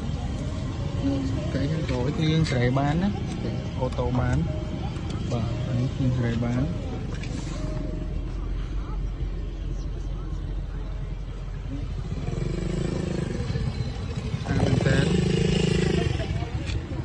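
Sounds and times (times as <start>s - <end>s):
low steady rumble: 0.0s - 17.0s.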